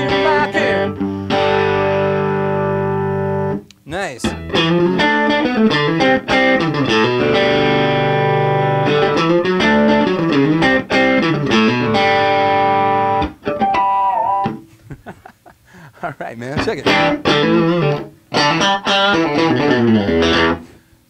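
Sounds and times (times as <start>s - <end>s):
electric guitar chords and notes: 0.0s - 14.7s, 16.5s - 20.8s.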